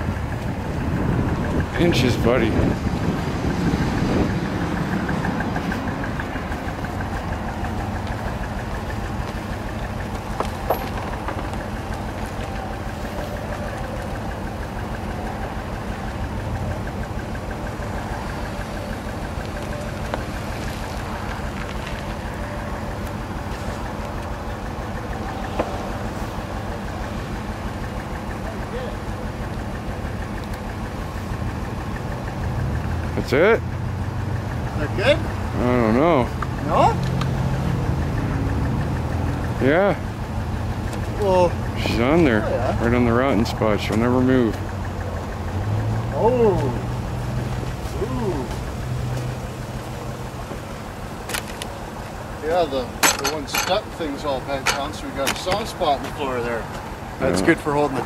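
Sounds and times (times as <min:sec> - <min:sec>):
car engine idling: 0:00.0 - 0:58.0.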